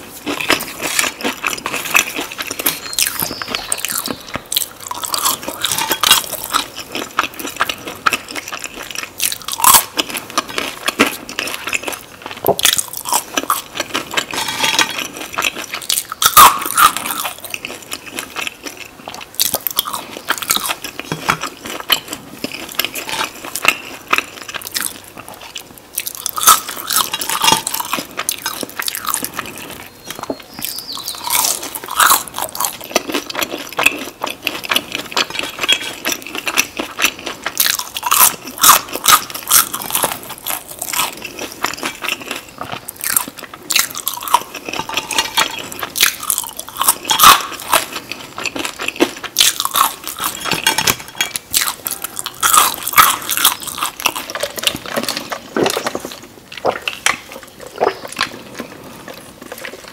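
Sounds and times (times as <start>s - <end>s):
chewing crisp fries: 0.0s - 59.9s.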